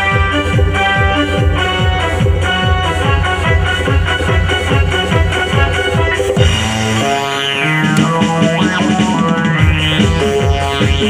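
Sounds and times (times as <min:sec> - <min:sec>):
drum beat: 0:00.0 - 0:11.0
electronic keyboard chords: 0:00.0 - 0:11.0.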